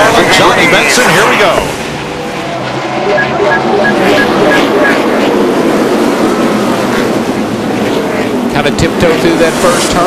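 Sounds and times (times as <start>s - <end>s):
race car engines at full throttle: 0.0s - 10.0s
high beeps: 3.1s - 5.0s.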